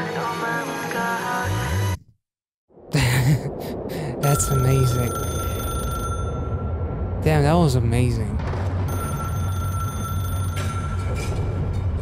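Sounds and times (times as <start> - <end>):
high-pitched electronic ringing tone: 4.2 - 6.8, 8.9 - 11.3.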